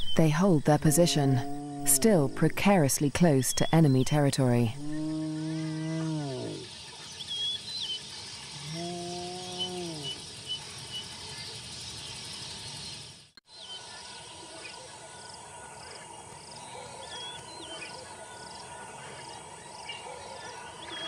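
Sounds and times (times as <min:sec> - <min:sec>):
birds chirping: 0:00.0 - 0:21.0
crickets and insects buzzing: 0:00.0 - 0:21.0.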